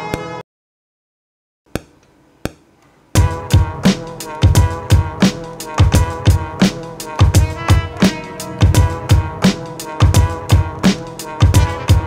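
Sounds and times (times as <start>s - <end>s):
boom-bap beat with trumpet chords: 3.2s - 12.0s.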